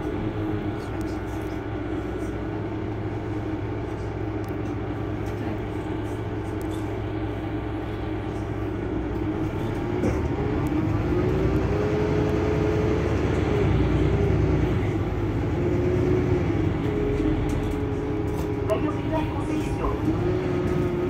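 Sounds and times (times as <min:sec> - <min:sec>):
bus engine idling: 0:00.0 - 0:21.0.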